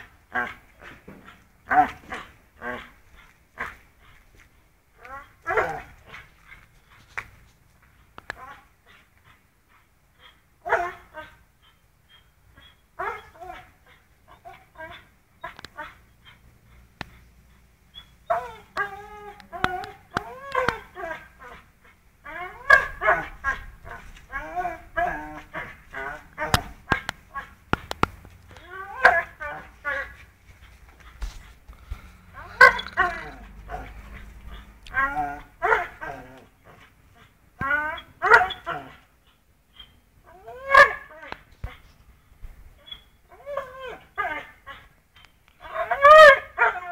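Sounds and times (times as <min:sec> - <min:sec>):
dog whining and whimpering: 0:10.2 - 0:16.4, 0:17.9 - 0:27.5, 0:28.5 - 0:30.2, 0:32.3 - 0:41.8, 0:42.8 - 0:46.9.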